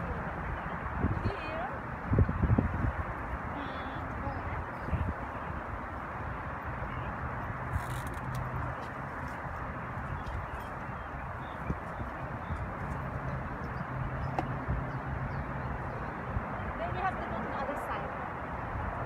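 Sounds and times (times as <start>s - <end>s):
freeway traffic rushing: 0.0s - 19.0s.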